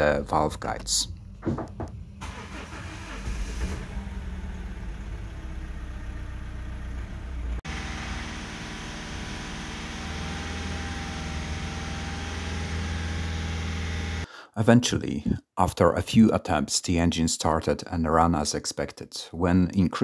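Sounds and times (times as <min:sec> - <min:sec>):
engine running steadily: 0:01.5 - 0:14.3
diesel engine cranking: 0:02.2 - 0:14.3.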